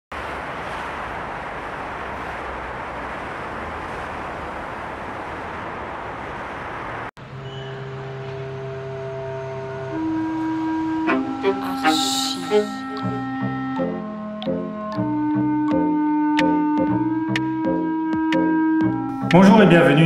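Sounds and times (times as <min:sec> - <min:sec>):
road traffic noise: 0:00.1 - 0:20.0
held chord of intro music: 0:07.9 - 0:15.1.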